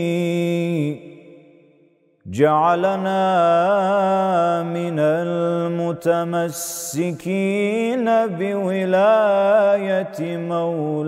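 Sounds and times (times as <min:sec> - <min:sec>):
man chanting: 0:00.0 - 0:01.4, 0:02.3 - 0:11.0.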